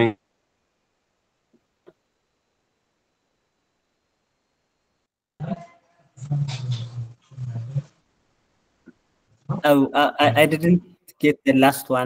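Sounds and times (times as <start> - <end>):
garbled man's voice on video call: 9.5 - 12.0.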